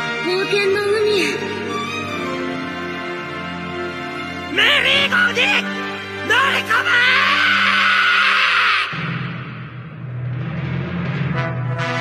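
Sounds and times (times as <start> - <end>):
orchestral score: 0.0 - 12.0.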